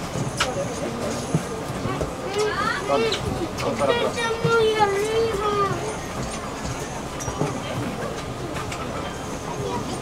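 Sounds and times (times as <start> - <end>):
low hum of bus: 0.0 - 10.0
passengers' voices: 0.0 - 10.0.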